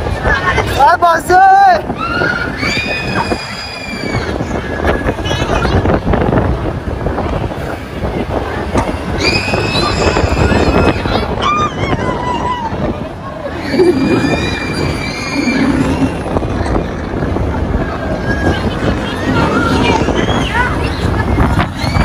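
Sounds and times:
crowd noise: 0.0 - 22.0
wind rushing on microphone: 0.0 - 22.0
riders screaming: 13.5 - 16.4.

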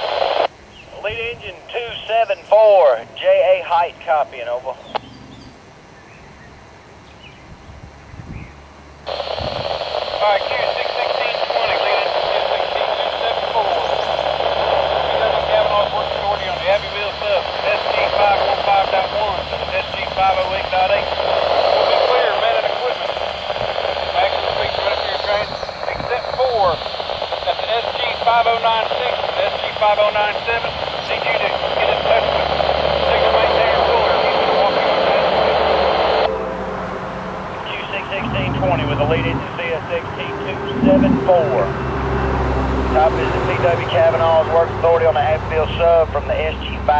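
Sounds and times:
voice breaking up in static: 0.0 - 4.8, 9.1 - 36.3, 37.5 - 41.9, 43.0 - 46.9
hissy radio transmission: 0.0 - 5.0, 9.1 - 36.4, 37.5 - 42.0, 42.9 - 46.9.

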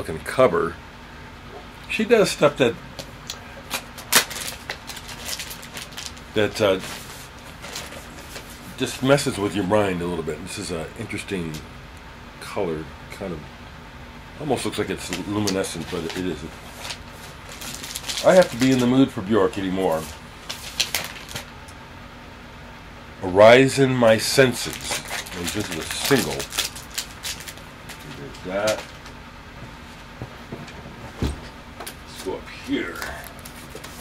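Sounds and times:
plastic sleeve crinkle: 3.3 - 8.7, 15.0 - 19.0, 19.8 - 21.5, 24.5 - 29.2.

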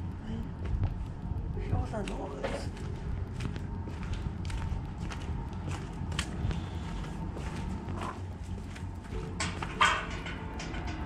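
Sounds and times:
low background rumble: 0.0 - 11.0
footsteps on concrete: 2.0 - 9.3.

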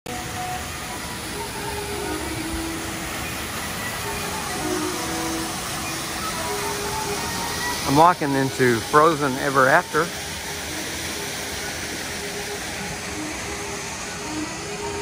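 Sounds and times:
faint melodic background music: 0.1 - 15.0
waterfall rushing: 0.1 - 15.0.

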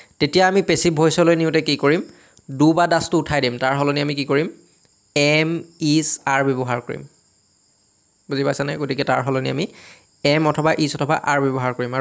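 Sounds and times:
man speaking: 0.0 - 4.6, 5.2 - 7.1, 8.3 - 12.0
faint high-pitched hiss: 0.0 - 12.0.

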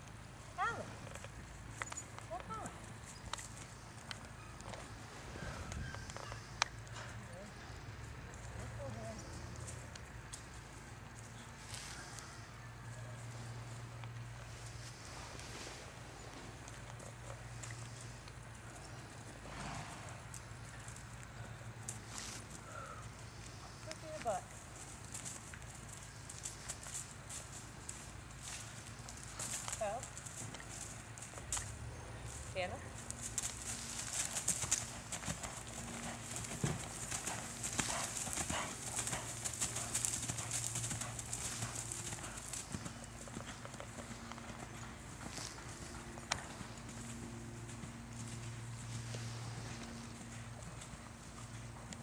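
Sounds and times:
steady low hum: 0.0 - 52.0
horse hoofbeats on dirt: 23.7 - 52.0.

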